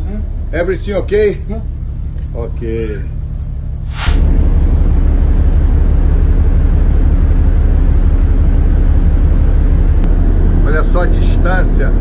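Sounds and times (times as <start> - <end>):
low rumble with hiss: 0.0 - 12.0.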